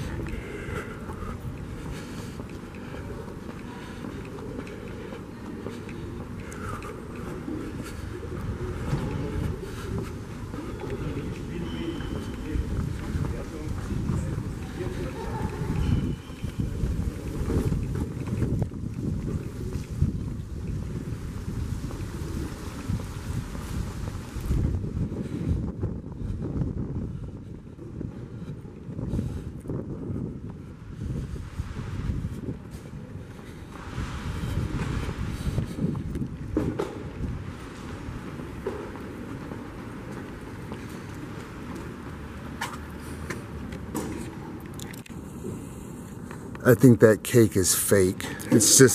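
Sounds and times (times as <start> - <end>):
wind buffeting microphone: 0.0 - 46.6.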